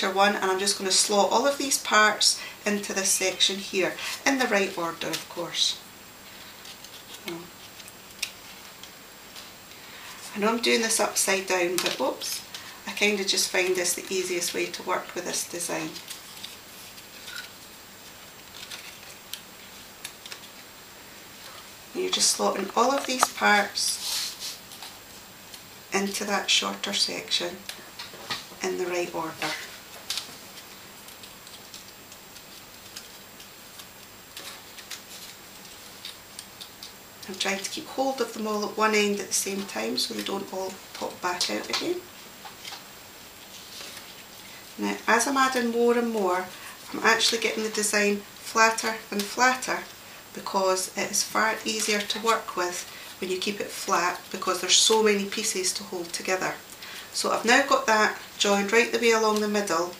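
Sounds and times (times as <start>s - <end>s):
paper rustle: 15.4s - 20.7s, 27.6s - 37.4s, 39.3s - 49.8s.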